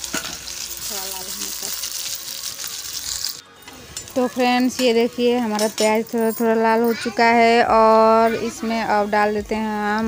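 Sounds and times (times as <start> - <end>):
onions sizzling in hot oil: 0.0 - 3.4.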